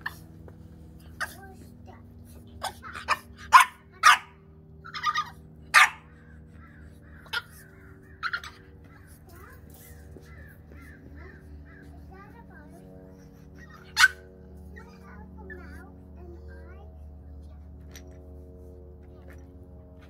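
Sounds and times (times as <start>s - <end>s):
puppy barking: 2.6s - 6.2s, 8.2s - 8.6s, 13.6s - 15.0s.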